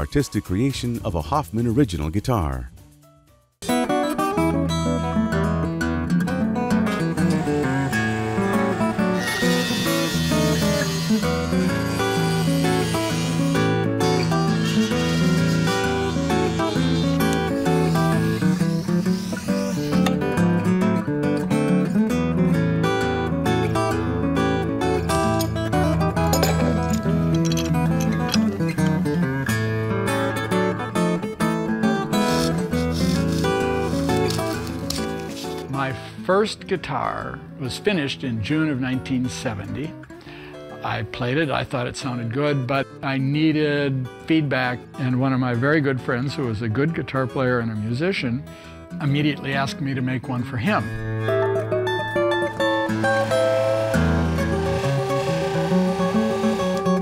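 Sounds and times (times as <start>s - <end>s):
fingerstyle acoustic guitar: 3.7s - 36.0s, 48.4s - 57.0s.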